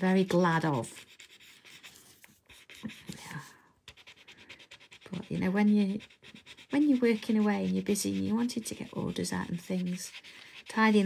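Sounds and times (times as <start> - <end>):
shading tool rubbing on paper: 0.0 - 11.0.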